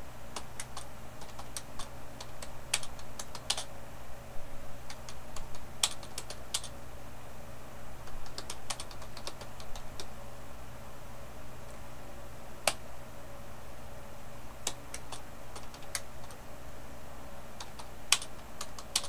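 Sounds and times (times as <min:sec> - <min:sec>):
steady low hum: 0:00.0 - 0:19.0
computer keyboard key clicks: 0:00.4 - 0:03.7, 0:04.9 - 0:06.7, 0:08.2 - 0:10.1, 0:14.7 - 0:16.4, 0:17.6 - 0:19.0.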